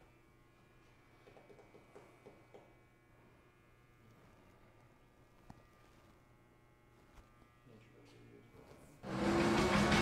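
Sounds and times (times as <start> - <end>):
faint electrical buzz: 0.0 - 9.7.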